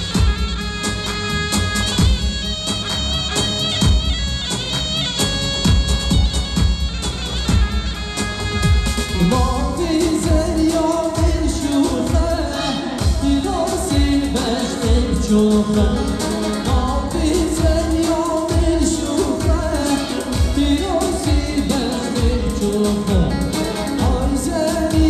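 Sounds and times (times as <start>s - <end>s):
driving drum beat: 0.0s - 25.0s
live band playing: 0.0s - 25.0s
man singing: 9.0s - 25.0s.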